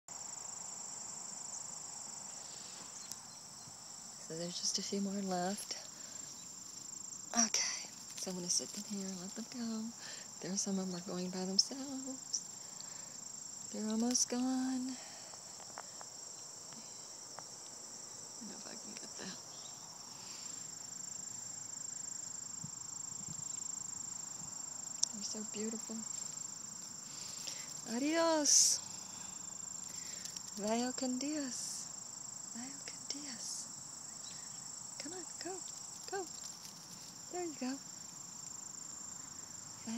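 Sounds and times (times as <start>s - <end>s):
insects trilling: 0.1s - 39.9s.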